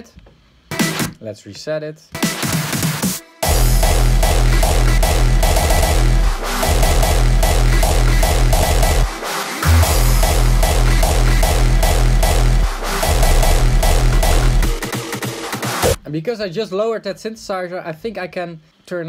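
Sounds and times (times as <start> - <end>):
hardstyle track with heavy kick: 0.7 - 1.2, 2.2 - 16.0.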